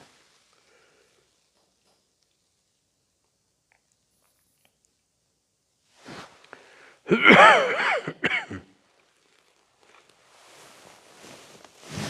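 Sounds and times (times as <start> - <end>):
man coughing: 7.1 - 8.7.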